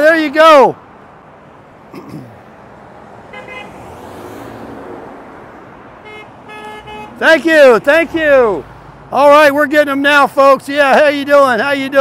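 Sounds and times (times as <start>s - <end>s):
car horn toots: 3.3s - 3.8s, 6.0s - 7.4s.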